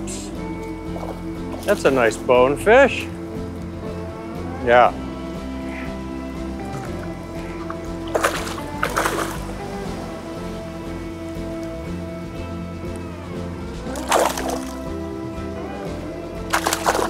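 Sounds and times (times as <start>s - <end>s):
background music: 0.0s - 17.0s
fish splashing in shallow water: 6.6s - 10.5s, 13.8s - 14.9s, 16.4s - 17.0s.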